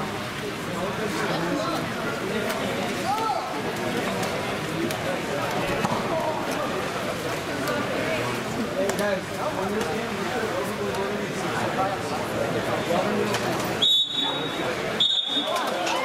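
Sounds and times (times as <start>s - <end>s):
chatter of spectators: 0.0s - 16.0s.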